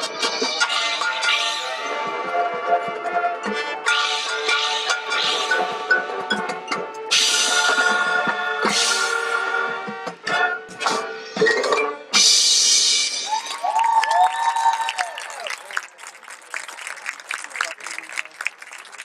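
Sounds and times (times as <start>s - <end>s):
brass chords: 0.0s - 12.8s
drums: 0.0s - 15.0s.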